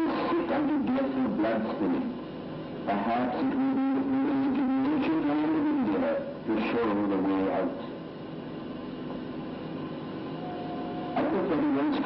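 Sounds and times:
man's voice from television: 0.0 - 2.2, 2.8 - 8.0, 11.1 - 12.0.

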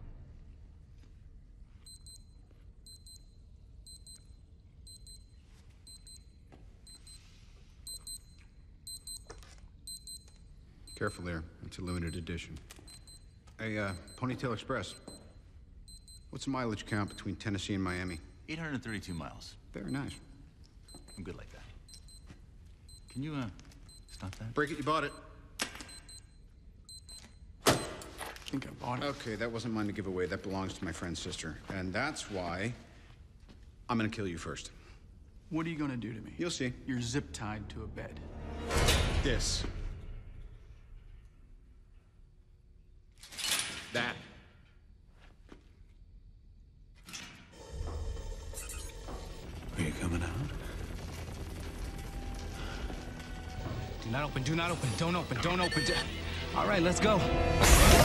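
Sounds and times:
wristwatch alarm beeping: 1.8 - 28.2, 52.6 - 57.1.

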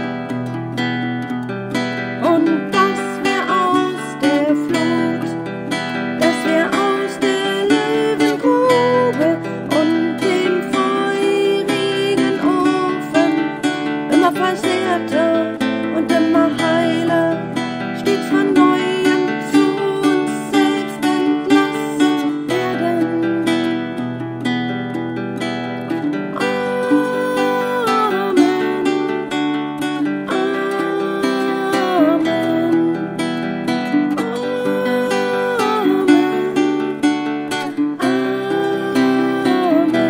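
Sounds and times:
solo acoustic guitar: 0.0 - 40.0.

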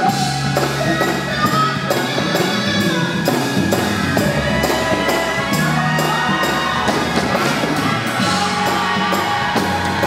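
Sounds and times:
backing singers: 0.0 - 10.0
drum kit: 0.0 - 10.0
woman singing lead: 0.0 - 10.0.

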